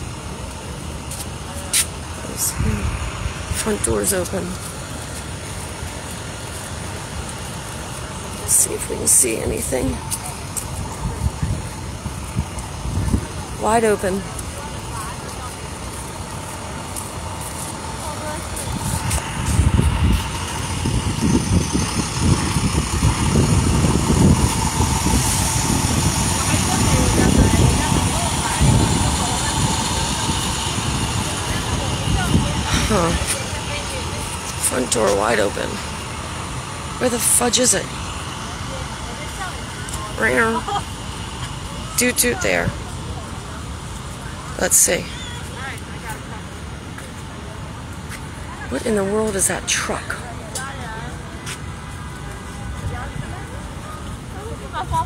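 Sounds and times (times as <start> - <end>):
low outdoor rumble: 0.0 - 55.0
street traffic: 0.0 - 55.0.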